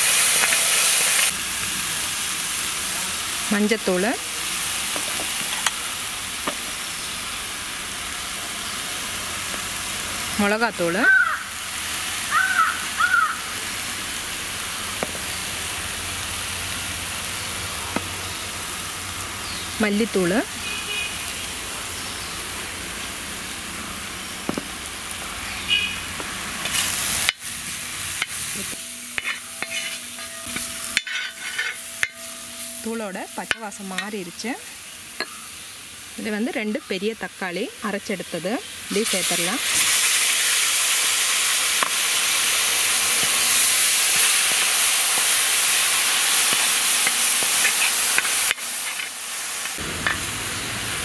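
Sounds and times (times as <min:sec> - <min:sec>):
paste sizzling in oil: 0:00.0 - 0:51.0
metal ladle scraping pan: 0:28.2 - 0:34.1, 0:47.0 - 0:49.2.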